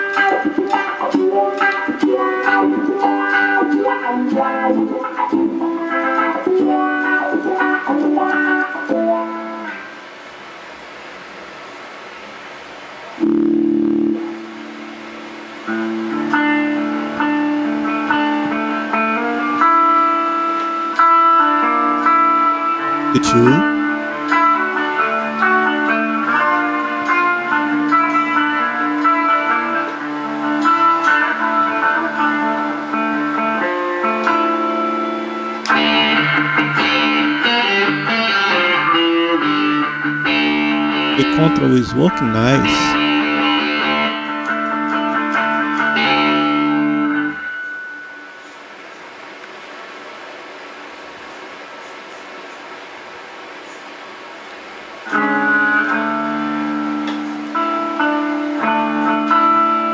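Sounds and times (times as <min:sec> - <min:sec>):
electric guitar chords and notes: 0:00.0 - 0:10.2, 0:13.1 - 0:48.4, 0:55.0 - 0:59.9.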